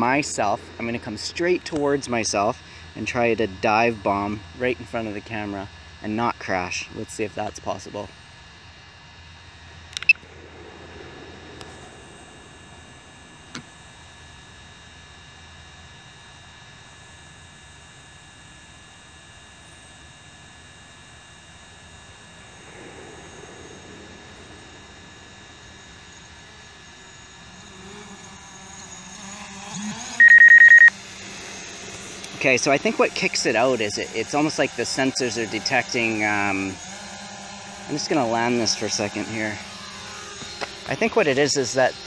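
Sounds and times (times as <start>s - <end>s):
sharp clicks: 9.9s - 10.2s
rapidly pulsing high beep: 30.0s - 31.6s.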